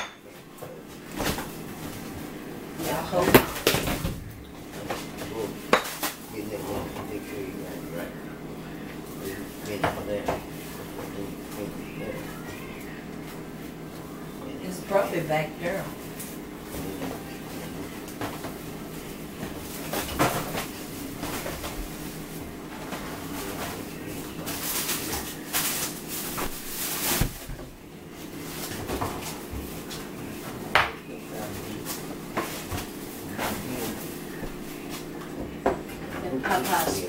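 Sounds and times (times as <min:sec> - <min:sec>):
kitchenware clinking: 0:00.0 - 0:00.4
steady low hum: 0:00.0 - 0:37.0.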